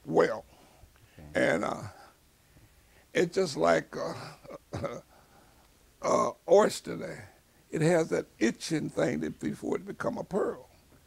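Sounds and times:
man clearing his throat: 4.0 - 5.1.

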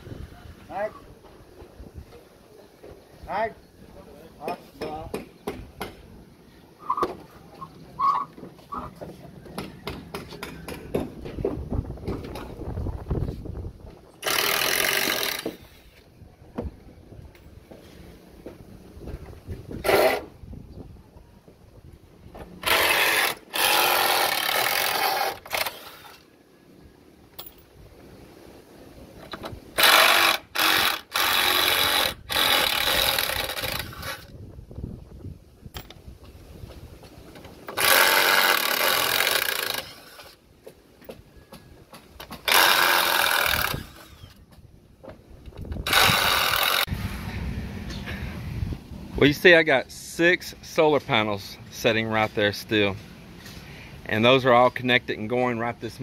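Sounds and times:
construction tool bursts: 14.2 - 15.8, 19.8 - 20.3, 22.6 - 26.2, 29.8 - 34.3, 37.7 - 40.4, 42.3 - 44.4, 45.8 - 47.2.

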